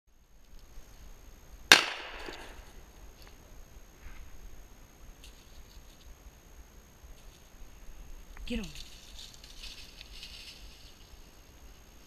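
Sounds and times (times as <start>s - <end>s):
gunshot with echo: 1.7s - 2.5s.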